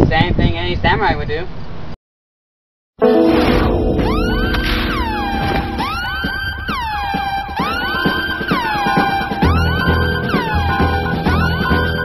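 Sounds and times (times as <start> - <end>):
falling synth sweeps: 3.0 - 12.0.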